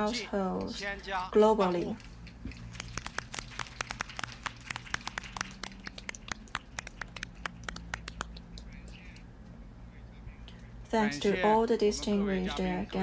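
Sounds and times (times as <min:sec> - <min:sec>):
people clapping: 0:01.9 - 0:09.3.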